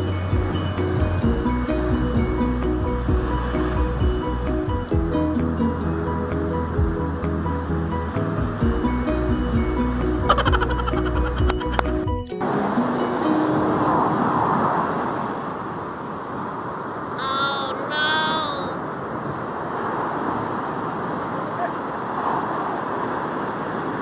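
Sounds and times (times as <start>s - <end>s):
waves breaking on beach: 2.4s - 4.7s, 12.4s - 24.0s
rising and falling calls: 10.1s - 12.0s.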